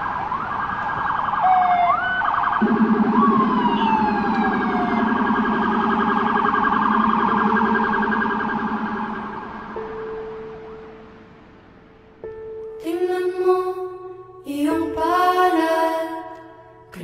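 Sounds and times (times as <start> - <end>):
sirens wailing: 0.0 - 11.8
steady held tone: 2.6 - 11.4.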